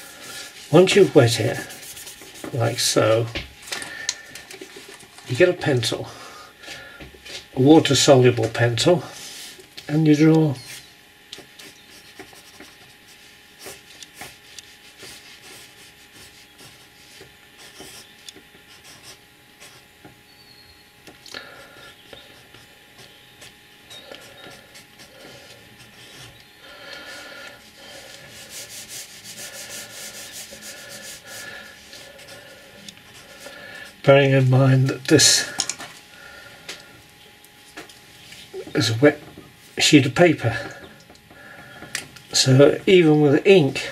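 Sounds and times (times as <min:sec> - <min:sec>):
pencil scratching on wet paper: 0:00.1 - 0:03.0, 0:11.4 - 0:18.1, 0:18.7 - 0:19.9, 0:22.4 - 0:26.4, 0:27.8 - 0:33.9.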